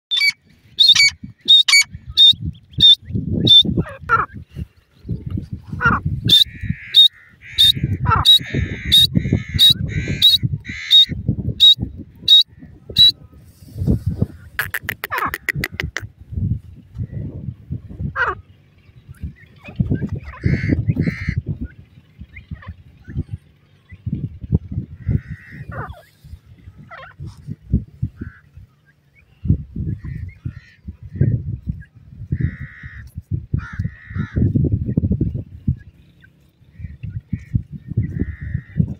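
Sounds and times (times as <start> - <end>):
soft bird chattering: 0.1 - 3.7, 6.3 - 12.4, 14.4 - 16.1
birds calling sharp high notes: 0.1 - 3.8, 6.3 - 13.2.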